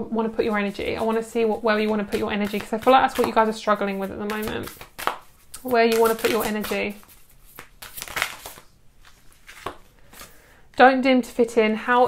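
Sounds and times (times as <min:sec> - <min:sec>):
cards rustling and tapping: 0:00.8 - 0:10.4.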